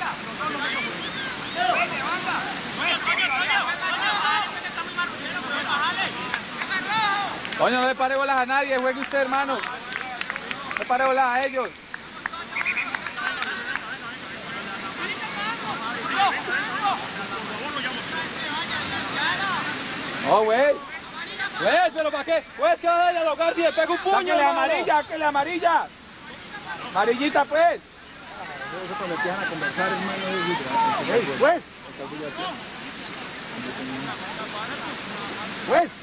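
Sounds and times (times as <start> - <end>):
background hiss: 0.0 - 36.0
distant shouts and calls: 0.0 - 36.0.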